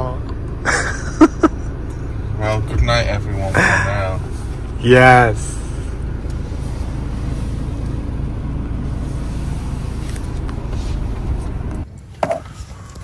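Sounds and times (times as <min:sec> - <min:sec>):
van engine and road noise: 0:00.0 - 0:13.0.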